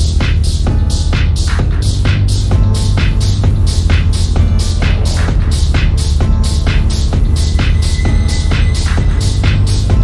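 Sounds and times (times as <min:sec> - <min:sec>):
deep bass: 0:00.0 - 0:10.0
electronic dance music: 0:00.0 - 0:10.0.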